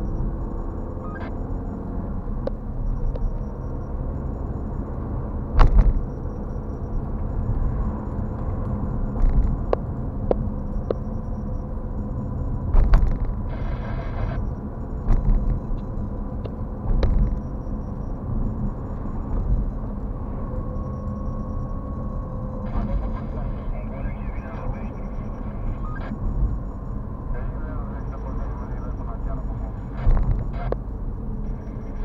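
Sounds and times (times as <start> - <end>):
car road and engine rumble: 0.0 - 32.0.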